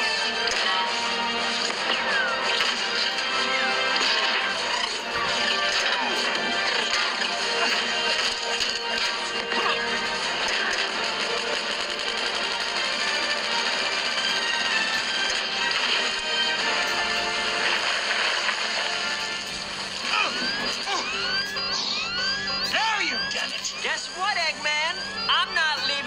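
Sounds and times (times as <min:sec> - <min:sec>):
action sound effects: 0:00.0 - 0:26.0
dramatic film score: 0:00.0 - 0:26.0.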